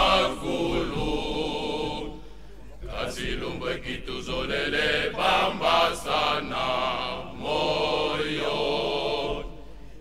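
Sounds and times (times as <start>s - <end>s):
male choir singing: 0.0s - 2.2s, 2.8s - 9.6s.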